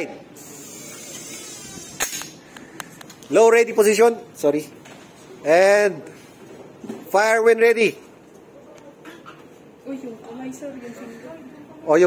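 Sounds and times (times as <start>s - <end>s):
room noise hiss: 0.0s - 12.0s.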